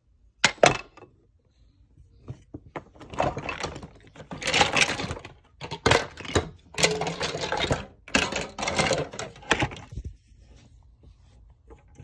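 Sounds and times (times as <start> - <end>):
toy pieces clattering: 3.0 - 9.8.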